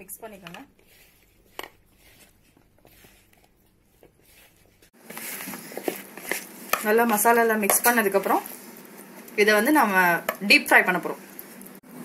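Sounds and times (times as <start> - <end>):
hands mixing food in a bowl: 0.0 - 11.6.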